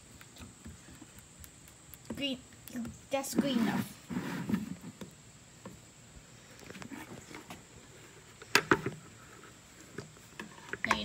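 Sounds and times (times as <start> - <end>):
plastic jug rubbing and tapping: 2.8 - 5.1.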